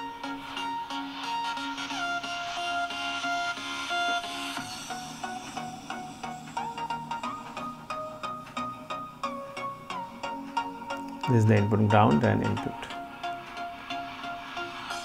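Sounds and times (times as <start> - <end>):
music through small loudspeaker: 0.0 - 15.0.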